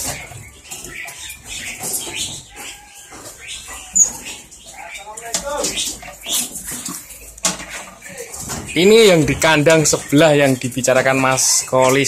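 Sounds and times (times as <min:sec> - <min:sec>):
songbirds chirping and calling: 0:00.0 - 0:12.0.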